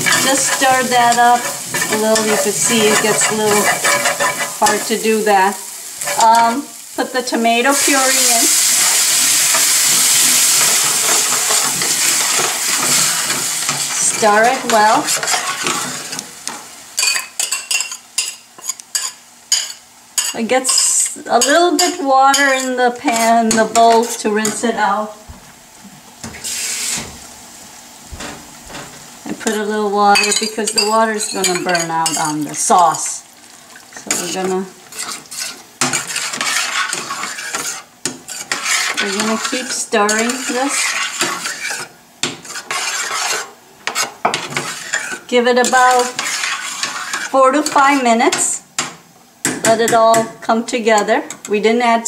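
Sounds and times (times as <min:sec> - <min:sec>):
spoon scraping sauce in pan: 0:00.0 - 0:05.0, 0:34.1 - 0:47.4
spoon clinking and scraping pan: 0:00.0 - 0:05.2, 0:06.0 - 0:06.6, 0:07.8 - 0:24.6, 0:30.1 - 0:32.4, 0:34.0 - 0:50.3
metal spoon stirring in a pan: 0:00.0 - 0:06.9, 0:07.7 - 0:24.8, 0:28.2 - 0:33.0, 0:33.7 - 0:50.2
hot oil sizzling: 0:00.0 - 0:52.0.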